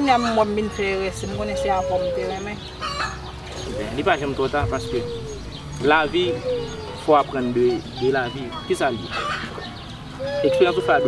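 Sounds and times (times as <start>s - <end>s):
woman speaking: 0.0s - 2.6s
drawn-out animal call: 0.0s - 11.0s.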